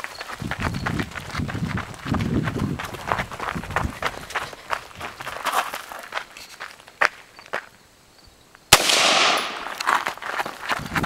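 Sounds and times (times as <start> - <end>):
boots running on gravel: 0.0 - 7.7, 9.3 - 11.0.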